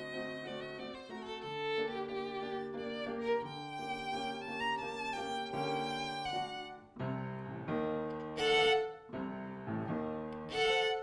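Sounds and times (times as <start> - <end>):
piano accompaniment: 0.0 - 11.0
violin bowed melody: 0.0 - 11.0.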